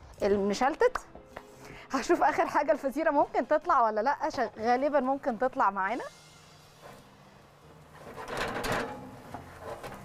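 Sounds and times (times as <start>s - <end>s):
metal oven rack rattling: 8.0s - 10.0s
oven door opening: 8.0s - 10.0s.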